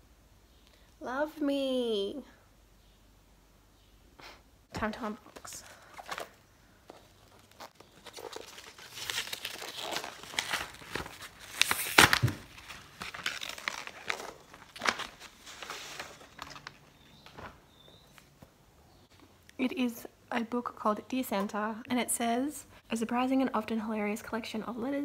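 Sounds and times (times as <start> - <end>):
packaging crinkling and tearing: 5.3 - 17.0.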